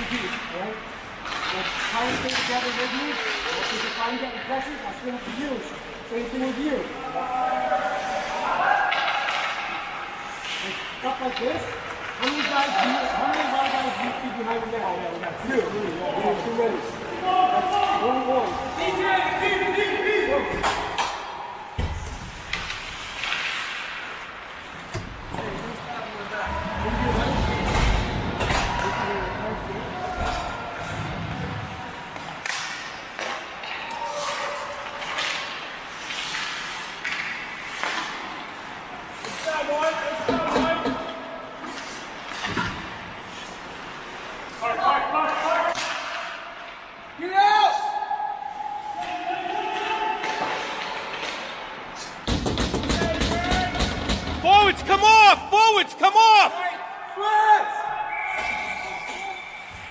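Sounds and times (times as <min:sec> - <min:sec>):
players shouting: 0:16.4 - 0:21.8, 0:53.0 - 0:59.9
sticks and puck knocking: 0:52.2 - 0:55.0
repeated shouted calls: 0:54.4 - 0:59.8.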